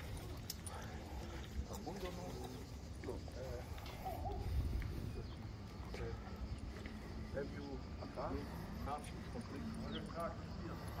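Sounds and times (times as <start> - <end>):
faint voices of people: 0.0 - 11.0
wind buffeting microphone: 3.8 - 5.7.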